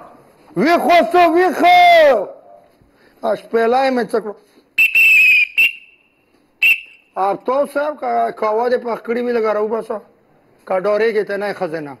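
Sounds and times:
whistle blasts: 0:04.8 - 0:07.2.

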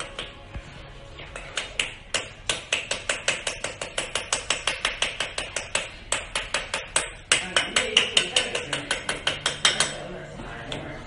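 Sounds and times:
blade knocking on tile floor: 0:01.3 - 0:10.0.

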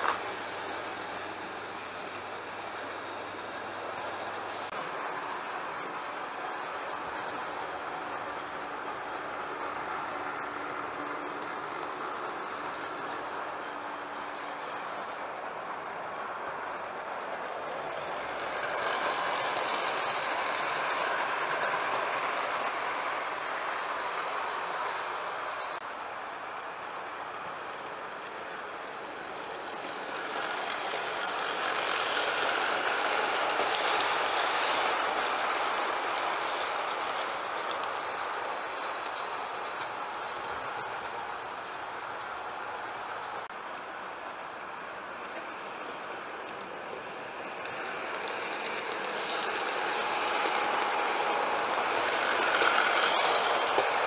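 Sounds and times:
model train whirring on track: 0:00.0 - 0:54.0.

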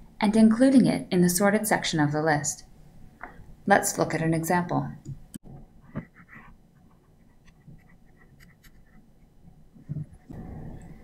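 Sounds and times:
pen tapping and scratching on tablet: 0:05.9 - 0:09.1.

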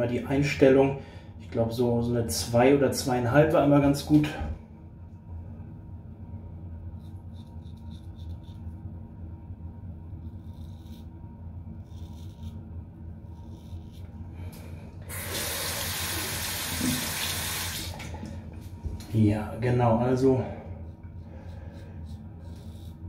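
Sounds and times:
razor scraping stubble: 0:06.9 - 0:08.8, 0:10.1 - 0:14.2, 0:20.9 - 0:23.0
tap running into sink: 0:15.2 - 0:18.3.

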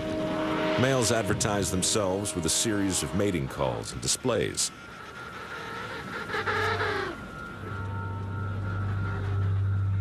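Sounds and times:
low steady drone: 0:00.0 - 0:10.0
penguin call: 0:04.4 - 0:09.9.

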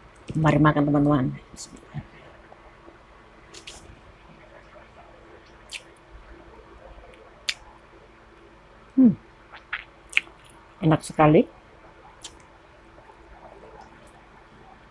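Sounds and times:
faint steady hum: 0:00.0 - 0:14.9
wet lip smacks: 0:05.7 - 0:05.9, 0:09.5 - 0:10.6, 0:12.2 - 0:12.4
person humming hmm of approval: 0:09.0 - 0:09.2
person chewing food: 0:09.5 - 0:10.6.

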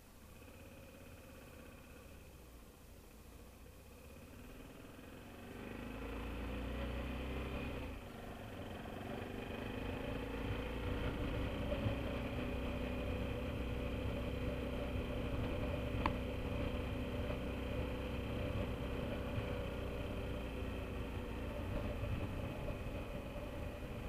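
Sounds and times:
motorcycle engine accelerating: 0:03.6 - 0:24.0.

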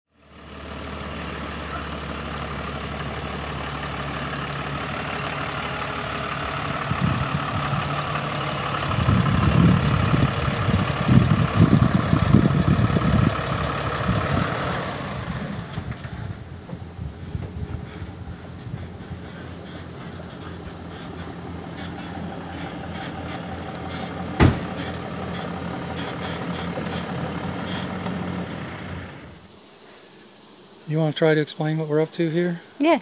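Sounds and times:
pickup truck engine idling: 0:00.2 - 0:29.5
low rumbling bursts: 0:00.8 - 0:29.5.

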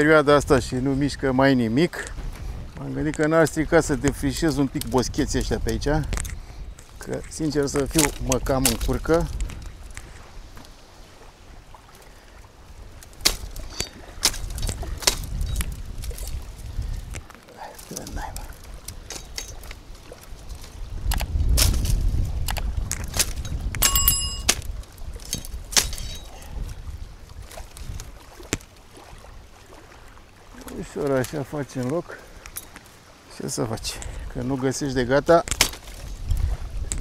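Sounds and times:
wind rumble on microphone: 0:00.0 - 0:31.7, 0:33.6 - 0:37.0
twigs crackling: 0:03.0 - 0:33.4, 0:35.2 - 0:37.0
pruning shears snipping twigs: 0:07.7 - 0:09.5, 0:13.0 - 0:16.4, 0:20.5 - 0:26.3, 0:35.4 - 0:36.0
brief metallic ring: 0:23.8 - 0:24.5.

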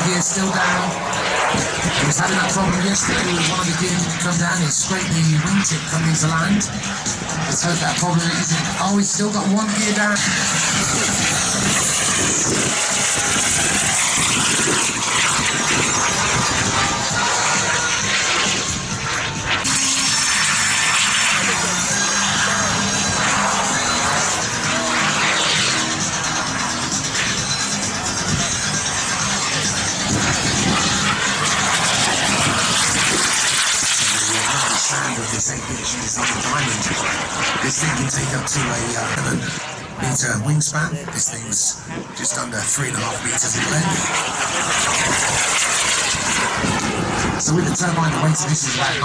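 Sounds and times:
jet turbine whine: 0:00.0 - 0:49.0
music playing: 0:16.0 - 0:33.0.

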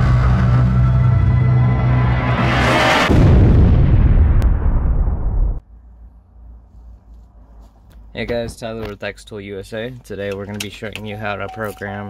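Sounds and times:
heavy impact hit: 0:00.0 - 0:05.6.

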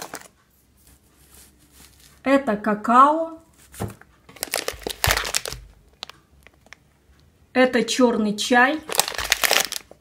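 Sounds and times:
plastic packet crinkling: 0:00.0 - 0:00.4, 0:04.3 - 0:06.8, 0:08.8 - 0:10.0.

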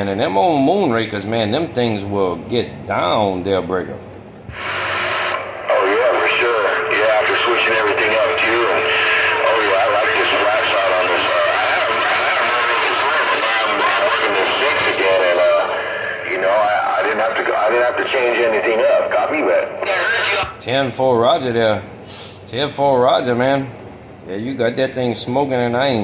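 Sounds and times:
radio static: 0:04.5 - 0:20.6
voice over cb radio: 0:04.6 - 0:20.6.

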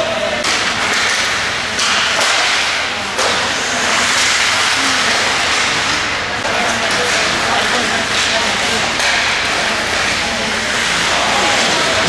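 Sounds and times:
indoor rink noise: 0:00.0 - 0:12.0
skate blades scraping ice: 0:00.9 - 0:12.0.

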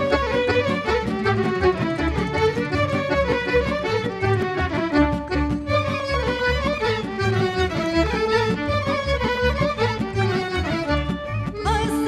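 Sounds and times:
double bass: 0:00.0 - 0:12.0
violins playing folk tune: 0:00.0 - 0:12.0.

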